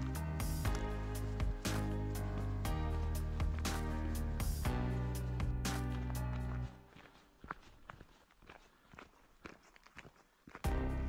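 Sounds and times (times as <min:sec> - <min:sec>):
background music: 0:00.0 - 0:07.2, 0:10.6 - 0:11.0
footsteps on gravel: 0:00.0 - 0:11.0.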